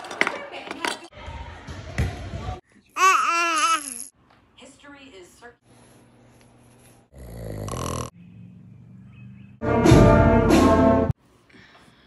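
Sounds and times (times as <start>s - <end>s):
baby's voice: 2.9s - 4.1s.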